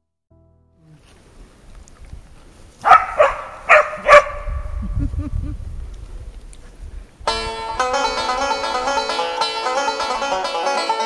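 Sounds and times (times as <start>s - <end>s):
dog barking: 2.8s - 4.6s.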